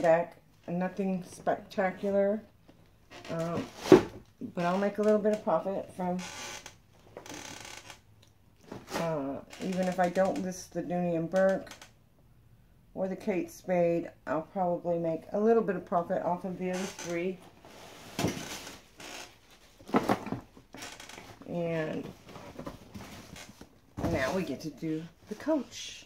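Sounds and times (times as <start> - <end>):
rustling and creaking handling noise: 1.4 - 10.6, 16.6 - 25.9
rustling and scraping handling noises: 17.1 - 26.0.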